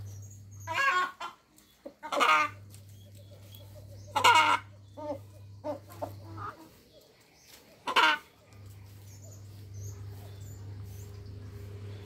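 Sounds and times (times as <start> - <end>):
farmyard fowl calling: 0.0 - 12.0
steady low hum: 1.6 - 12.0.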